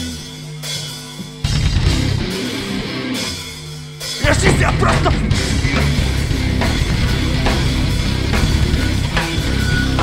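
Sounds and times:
heavy rock band playing: 0.0 - 10.0.

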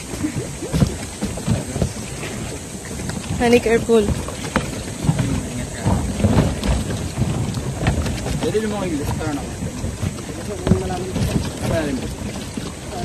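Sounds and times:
footsteps on plastic dock: 0.0 - 13.0
wind buffeting microphone: 0.0 - 13.0.

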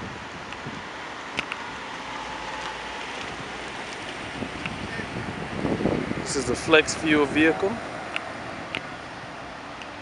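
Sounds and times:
wind on microphone: 0.0 - 1.9, 2.6 - 9.4.

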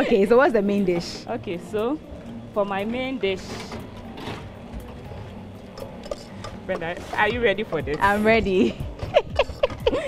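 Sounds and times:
utensils knocking against pots: 5.7 - 8.2.

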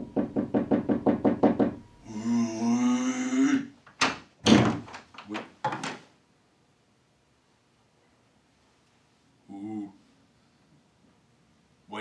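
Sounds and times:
rapid knocking on door: 0.0 - 1.8
drawn-out voice sound: 2.1 - 3.8.

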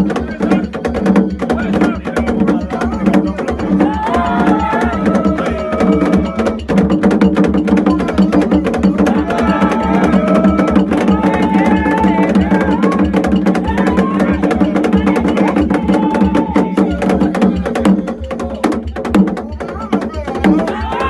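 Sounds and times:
hand drums playing fast rhythm: 0.0 - 21.0
voices singing: 0.0 - 21.0.

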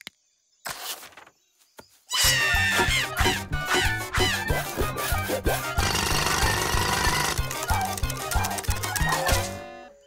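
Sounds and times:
cartoon power drill buzz: 3.2 - 8.0.

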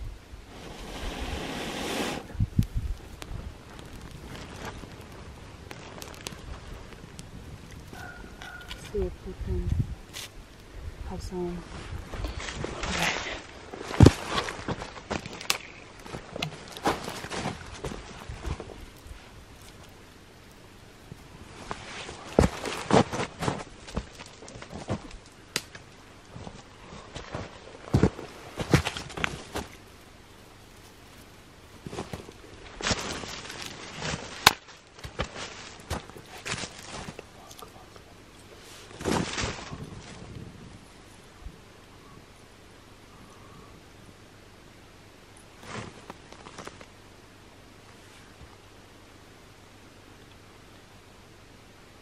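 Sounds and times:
twigs snapping and knocking: 2.6 - 9.0, 12.2 - 20.6, 21.7 - 26.6, 30.7 - 38.1
footsteps crunching in snow: 11.6 - 15.4, 31.8 - 37.8.

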